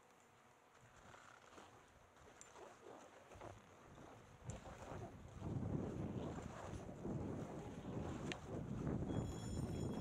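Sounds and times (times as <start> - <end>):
wind buffeting microphone: 3.4 - 10.0.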